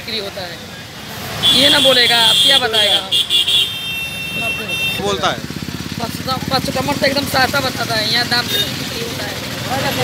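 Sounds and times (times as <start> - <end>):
vehicle motor running: 4.3 - 10.0.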